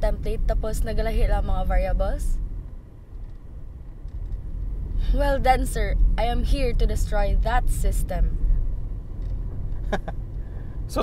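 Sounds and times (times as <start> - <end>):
car rumble inside cabin: 0.0 - 11.0.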